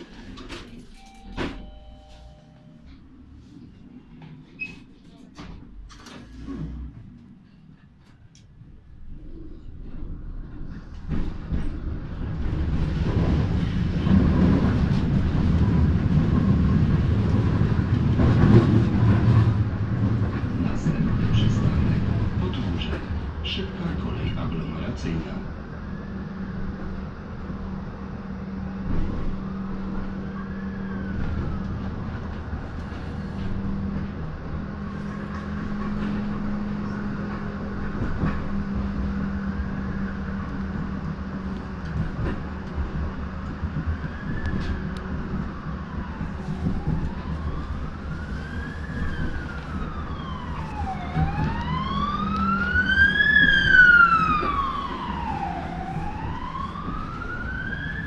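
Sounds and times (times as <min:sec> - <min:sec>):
tram rumble and hum: 0:00.0 - 0:58.0
siren wailing: 0:43.8 - 0:58.0.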